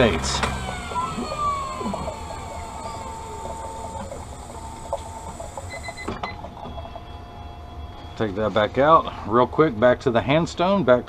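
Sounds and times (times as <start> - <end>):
lens edger machine whine: 0.0 - 6.9.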